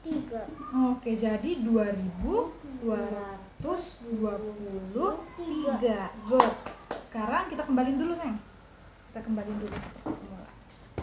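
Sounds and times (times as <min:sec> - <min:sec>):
woman speaking: 0:00.8 - 0:08.5, 0:09.1 - 0:10.5
hand claps: 0:06.4 - 0:07.1.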